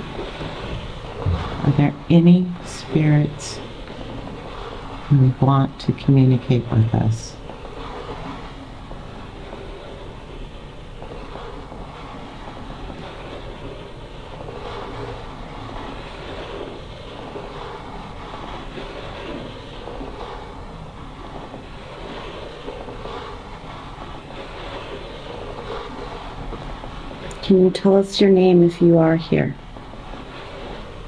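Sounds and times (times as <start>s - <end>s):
wood scraping across wood: 0.0s - 5.1s, 7.4s - 27.4s, 29.6s - 31.0s
low steady hum: 0.0s - 31.0s.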